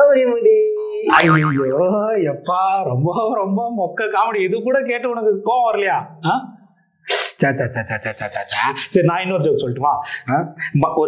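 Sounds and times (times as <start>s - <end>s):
man talking: 0.0s - 6.5s, 7.4s - 11.0s
springy comic boing: 1.0s - 1.9s.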